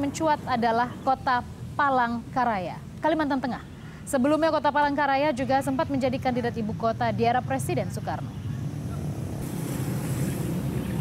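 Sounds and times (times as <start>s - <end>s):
hiss: 9.4s - 11.0s.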